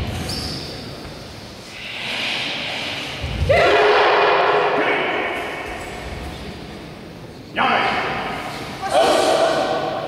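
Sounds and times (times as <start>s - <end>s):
group shouting in unison: 3.5s - 4.8s.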